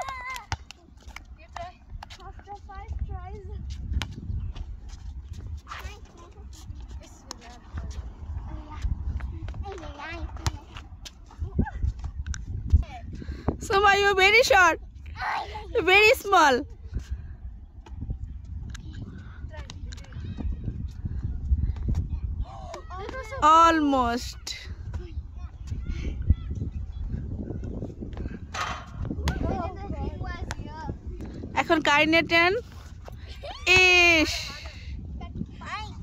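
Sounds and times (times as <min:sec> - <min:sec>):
wind rumbling on microphone: 0:00.0 - 0:36.0
faint children's voices: 0:18.0 - 0:23.4, 0:24.2 - 0:27.9.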